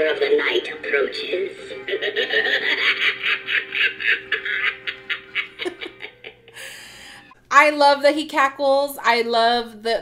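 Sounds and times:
toy pumpkin cackling laugh: 1.8s - 6.5s.

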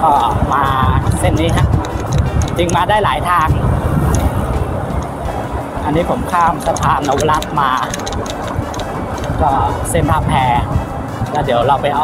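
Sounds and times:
man talking: 0.0s - 1.8s, 2.4s - 3.7s, 5.8s - 8.0s, 9.3s - 12.0s
car engine and tyres rumbling: 0.0s - 12.0s.

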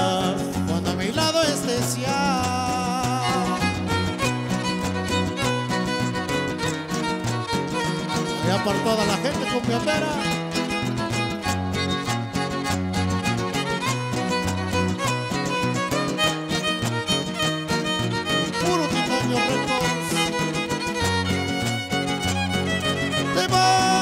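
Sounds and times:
strummed guitars: 0.0s - 24.0s
violin melody: 1.9s - 24.0s.

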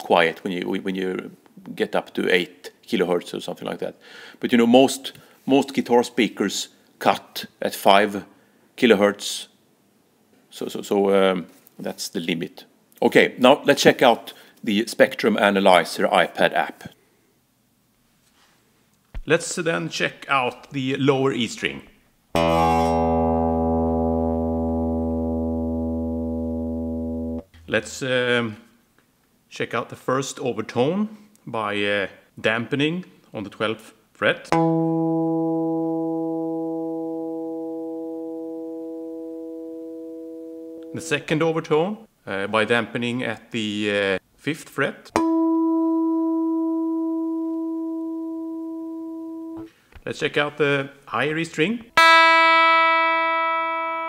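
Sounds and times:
guitar low string ringing: 22.4s - 27.5s, 34.5s - 41.2s, 45.2s - 49.7s, 52.0s - 54.0s.

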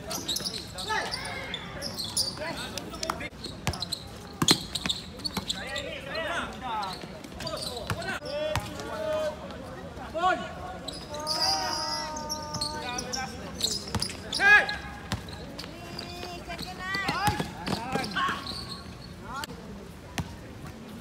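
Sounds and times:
sneakers squeaking: 0.0s - 9.2s, 10.7s - 19.5s
basketball bouncing on court: 3.6s - 5.6s, 13.8s - 18.4s, 20.2s - 20.4s
players shouting: 10.1s - 18.7s.

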